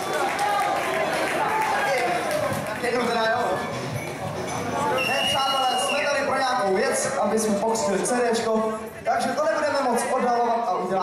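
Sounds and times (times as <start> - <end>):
high whistle-like tone: 5.0 - 6.1
man talking into a microphone: 5.0 - 11.0.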